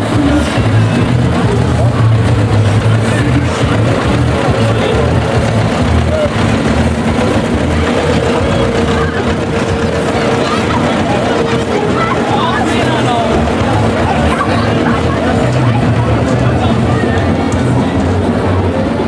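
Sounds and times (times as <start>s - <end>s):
crowd voices: 0.0s - 19.0s
music: 0.0s - 19.0s
tractor diesel engine running: 0.0s - 19.0s.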